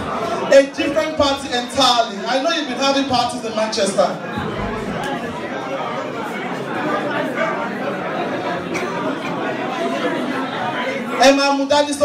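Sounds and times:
crowd chatter in large hall: 0:00.0 - 0:12.0.

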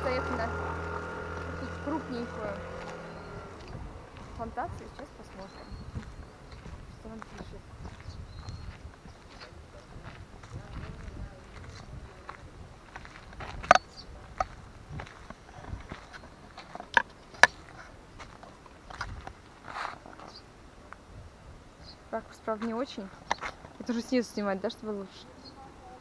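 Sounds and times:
footsteps on paved road: 0:00.0 - 0:21.1, 0:21.8 - 0:25.1
low outdoor rumble: 0:00.0 - 0:26.0.

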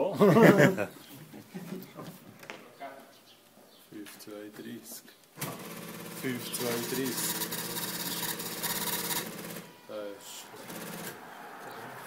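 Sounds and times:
ticket printer buzzing rattle: 0:05.4 - 0:09.7, 0:10.6 - 0:11.2
man talking: 0:06.2 - 0:07.3, 0:09.9 - 0:10.6.

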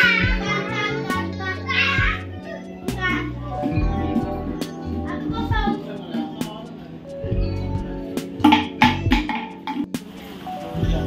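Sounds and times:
children calling out: 0:00.0 - 0:04.0
background music with bass: 0:00.0 - 0:11.0
low drum thumps: 0:08.3 - 0:10.0.

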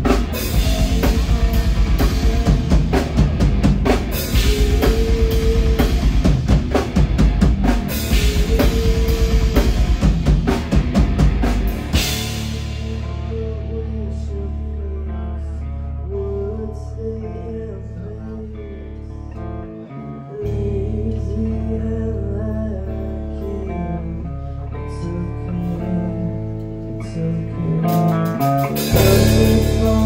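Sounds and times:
drums and cymbals crashing: 0:00.0 - 0:13.1, 0:28.7 - 0:30.0
bass: 0:00.0 - 0:30.0
electric guitar: 0:00.0 - 0:30.0.

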